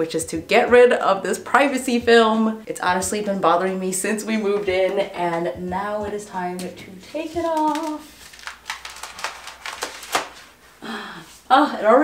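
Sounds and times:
plastic film crinkling while peeled: 0:07.2 - 0:10.6.

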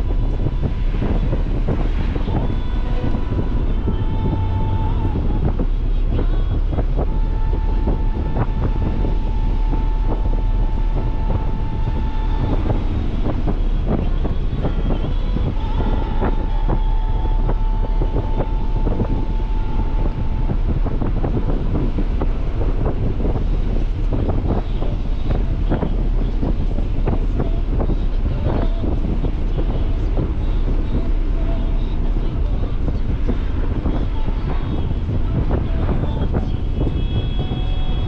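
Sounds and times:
car engine rumble while driving: 0:00.0 - 0:38.0
knocks and buffets: 0:00.0 - 0:38.0.

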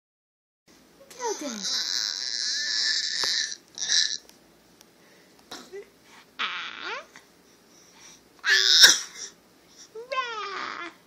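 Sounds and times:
baby squealing: 0:01.6 - 0:04.2.

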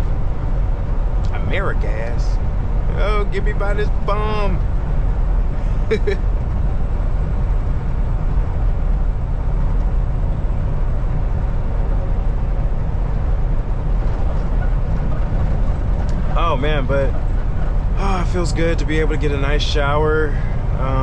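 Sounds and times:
truck engine and road drone: 0:00.0 - 0:21.0
person laughing: 0:05.6 - 0:06.2.

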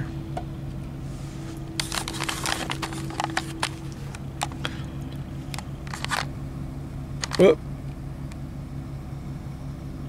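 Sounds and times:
truck engine idling: 0:00.0 - 0:10.0.

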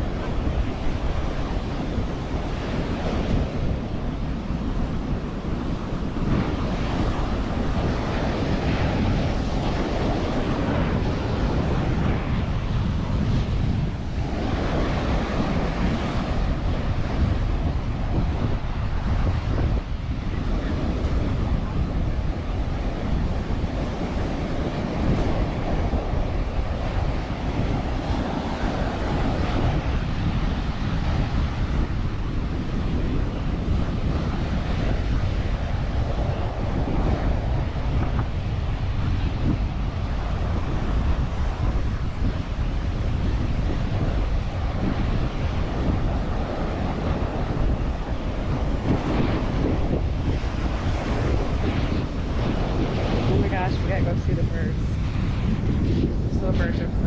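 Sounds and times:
ocean surf breaking: 0:00.0 - 0:57.0
wind rumbling on microphone: 0:00.0 - 0:57.0.

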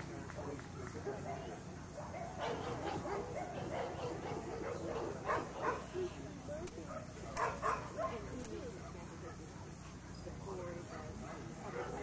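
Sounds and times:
dog barking: 0:01.1 - 0:06.0, 0:06.9 - 0:09.4, 0:10.9 - 0:12.0.

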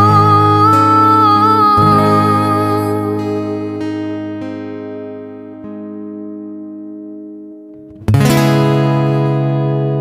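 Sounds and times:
acoustic guitar notes ringing: 0:00.0 - 0:10.0.

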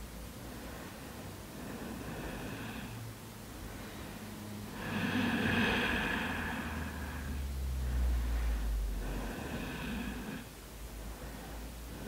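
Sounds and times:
woman breathing deeply: 0:00.4 - 0:12.0.

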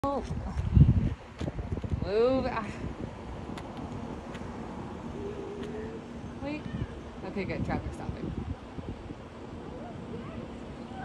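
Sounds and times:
cars on road rumbling: 0:00.0 - 0:11.0.

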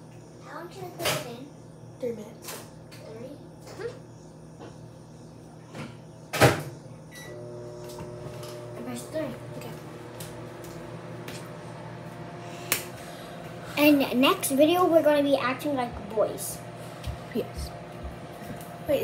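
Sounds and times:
microwave oven humming: 0:00.0 - 0:19.0.

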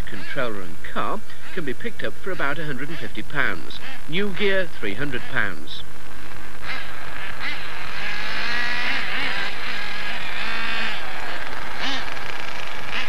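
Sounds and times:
model car engines buzzing and revving: 0:00.0 - 0:13.0.

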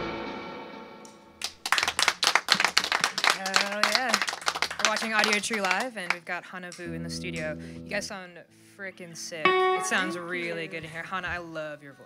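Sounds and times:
people clapping: 0:01.4 - 0:07.5.

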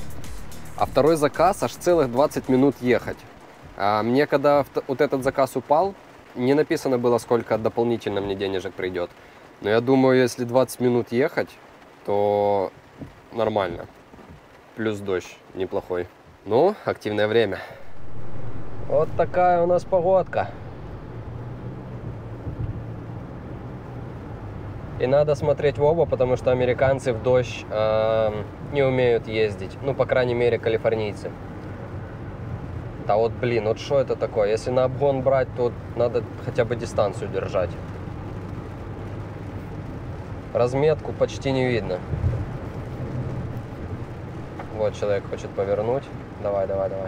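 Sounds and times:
car hum: 0:00.0 - 0:04.7, 0:17.8 - 0:47.0
car road noise in rain: 0:00.0 - 0:47.0.

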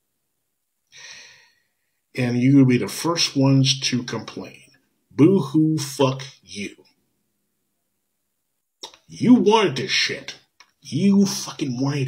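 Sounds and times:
man breathing in: 0:00.9 - 0:01.9.

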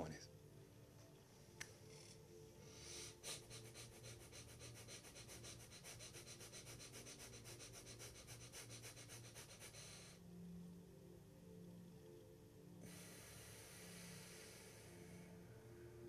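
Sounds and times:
person breathing rapidly through nose: 0:02.6 - 0:10.2, 0:12.8 - 0:15.4.

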